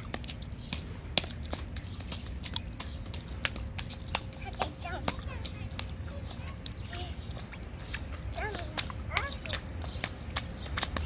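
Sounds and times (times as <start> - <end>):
footsteps splashing in puddle: 0.0 - 11.0.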